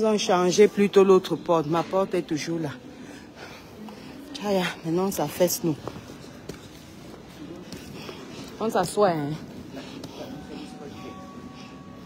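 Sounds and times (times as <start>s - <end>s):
airport terminal background noise: 0.0s - 12.0s.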